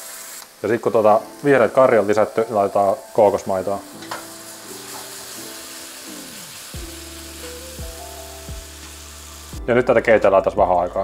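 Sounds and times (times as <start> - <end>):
food sizzling in a pan: 0.0 - 9.8
background music: 0.1 - 11.0
deep bass: 7.8 - 11.0.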